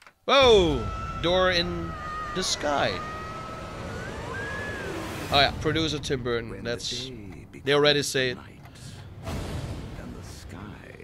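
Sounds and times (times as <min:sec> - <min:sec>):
steady rushing like wind: 0:00.5 - 0:07.0.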